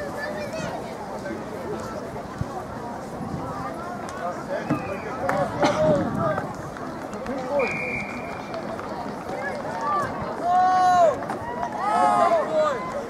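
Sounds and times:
whistle note: 0:07.6 - 0:08.4.

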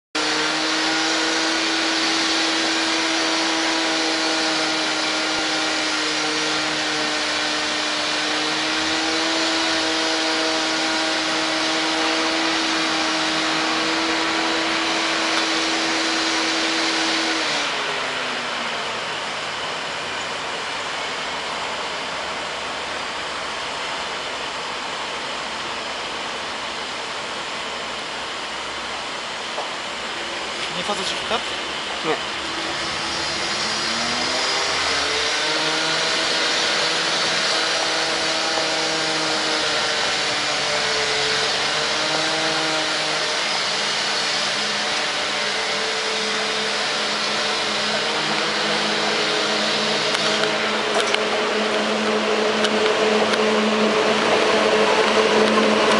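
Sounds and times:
fan-like whine of railway equipment: 0:00.2 - 0:55.9.

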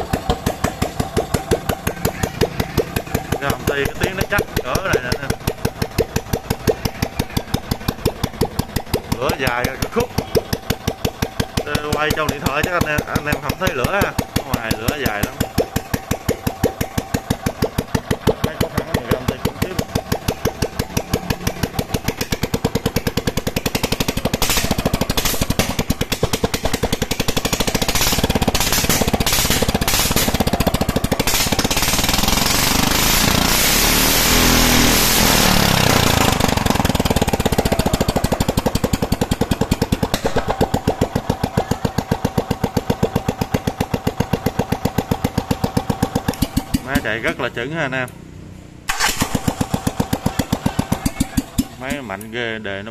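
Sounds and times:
petrol engine idling and revving: 0:00.0 - 0:52.9.

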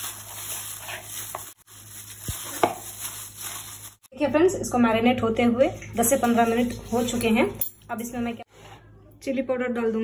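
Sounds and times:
plastic glove crinkling: 0:00.0 - 0:04.1.

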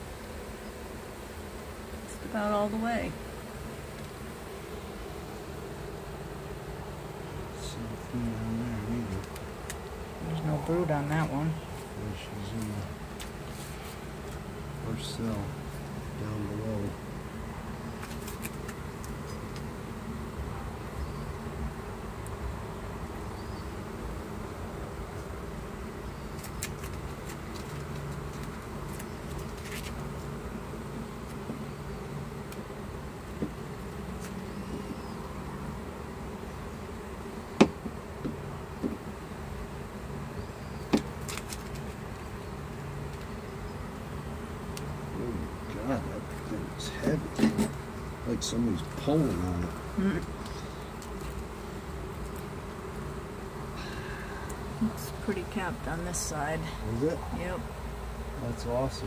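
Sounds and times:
honeybees buzzing: 0:00.0 - 0:59.0.

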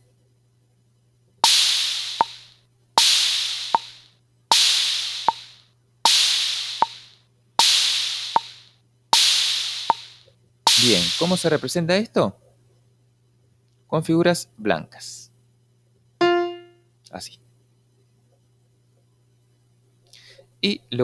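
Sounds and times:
sampled bongo taps: 0:01.4 - 0:02.4, 0:04.5 - 0:05.4, 0:08.3 - 0:08.6
open hi-hat ringing: 0:01.4 - 0:11.7.

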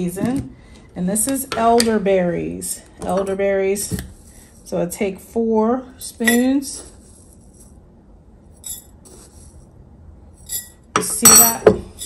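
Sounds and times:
spoon clinking against glass: 0:06.2 - 0:06.9, 0:10.4 - 0:12.0.

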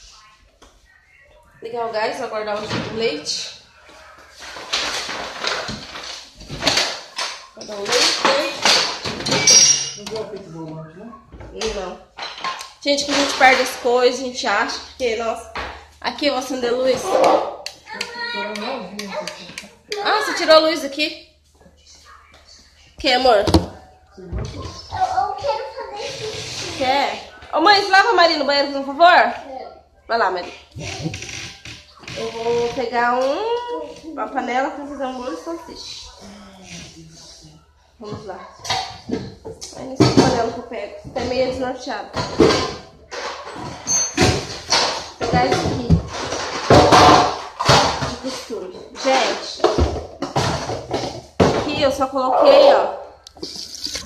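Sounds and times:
household objects knocking: 0:23.3 - 0:23.8.

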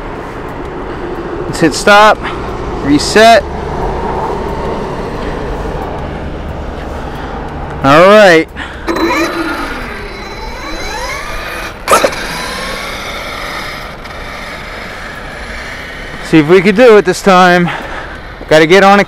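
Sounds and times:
electric motor whining: 0:08.9 - 0:16.8.

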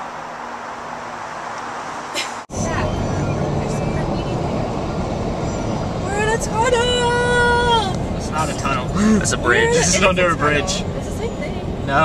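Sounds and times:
car road noise rumble: 0:00.0 - 0:12.0.

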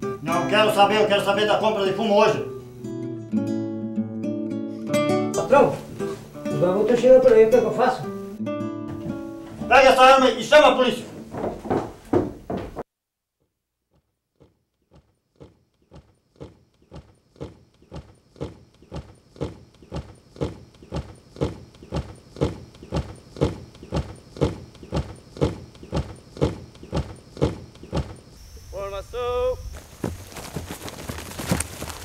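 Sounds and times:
boots marching on gravel: 0:29.8 - 0:32.0.

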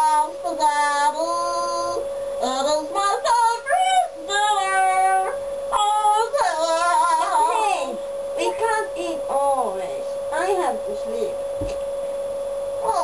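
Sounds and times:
child singing: 0:00.0 - 0:09.0.

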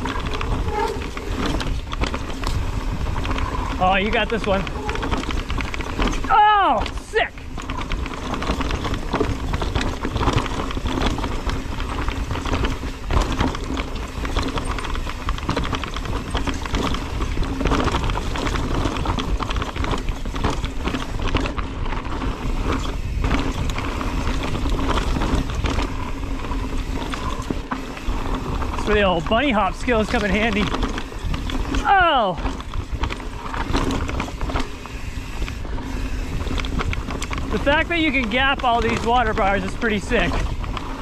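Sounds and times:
bike rattling over rocks: 0:00.0 - 0:41.0
tyres on dirt trail: 0:00.0 - 0:41.0
wind on microphone: 0:00.0 - 0:41.0
rider shouting: 0:06.2 - 0:07.5, 0:31.8 - 0:32.4.

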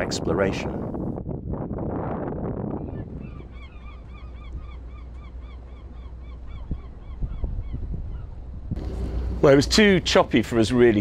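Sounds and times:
bird calling: 0:02.9 - 0:10.2
steady low rumble: 0:07.8 - 0:11.0.

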